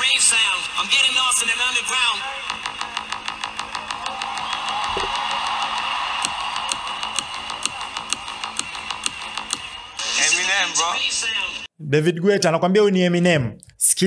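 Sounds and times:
electronic dance music: 0.0s - 11.7s.

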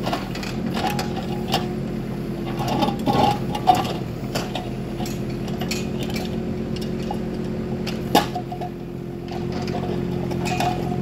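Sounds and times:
small diesel engine running: 0.0s - 11.0s
bucket clinking and scraping rock: 9.3s - 11.0s.

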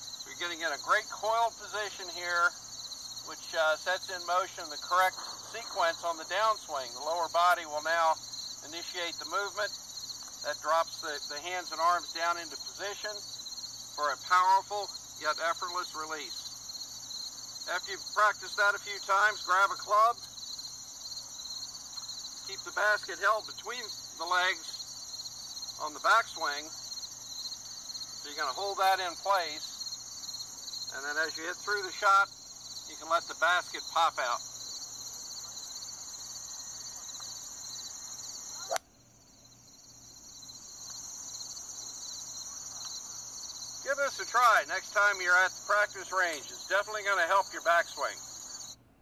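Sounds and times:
insects chirring: 0.0s - 48.8s.

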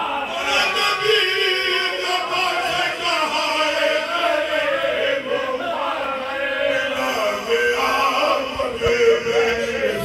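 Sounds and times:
men chanting an elegy: 0.0s - 10.0s.

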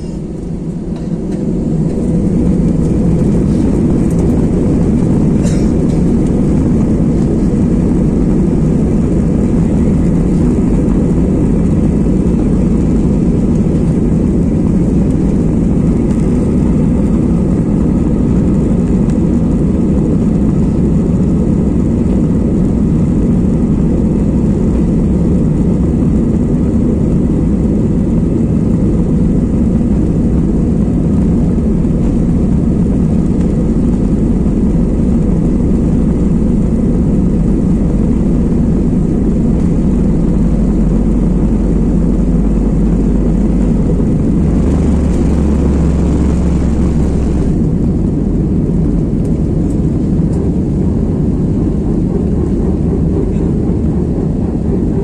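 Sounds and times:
jet cabin low rumble: 0.0s - 55.0s.

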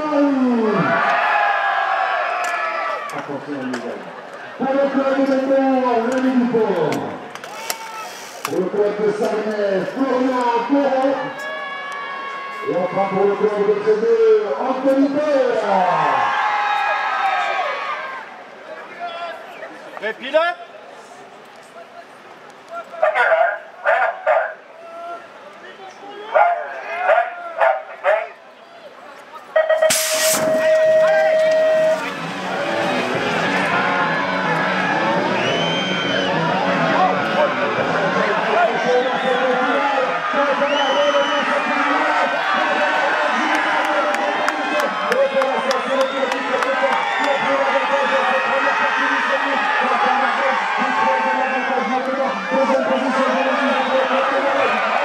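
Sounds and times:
announcer calling over public address: 22.9s - 24.6s, 26.3s - 28.4s, 29.5s - 35.4s
voice calling over loudspeaker: 22.9s - 25.1s, 26.3s - 28.4s
start tones: 29.6s - 36.5s.

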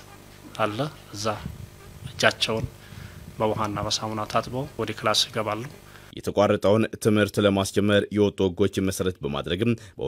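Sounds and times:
steady low buzz: 0.0s - 7.2s
man speaking into microphones: 0.5s - 10.0s.

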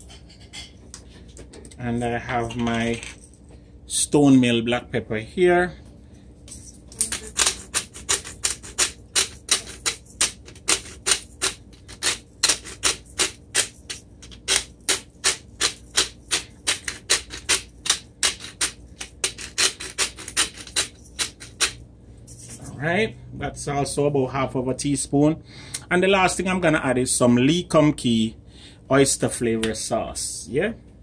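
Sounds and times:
pepper grinder clicking: 6.9s - 21.8s.

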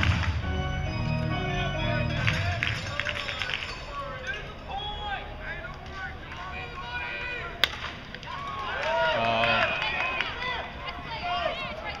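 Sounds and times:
crowd shouting and cheering: 0.0s - 12.0s.

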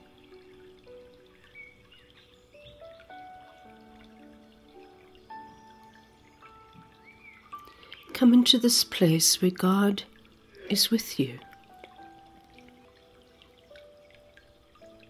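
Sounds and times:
soft slow background music: 0.0s - 15.0s.

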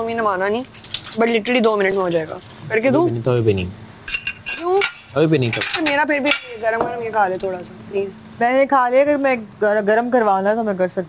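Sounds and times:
background voices: 2.6s - 3.9s
plates and cutlery clinking: 4.1s - 7.1s.

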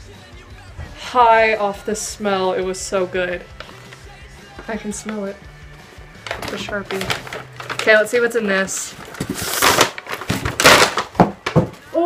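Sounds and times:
packing paper rustling: 3.5s - 4.1s, 5.9s - 12.0s.

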